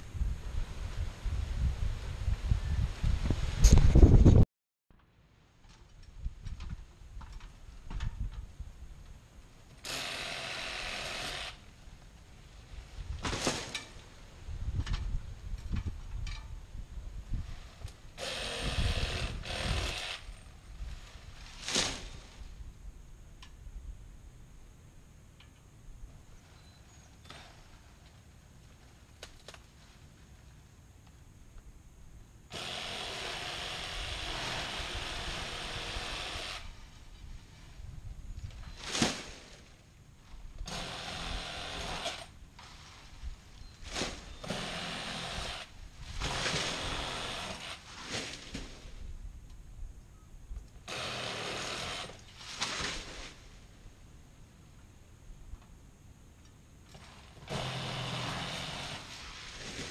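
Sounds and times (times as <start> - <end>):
power tool cutting palm fronds: 9.8 - 11.6, 18.2 - 20.4, 32.5 - 36.7, 40.7 - 42.3, 44.0 - 48.3, 50.8 - 53.0, 57.0 - 59.9.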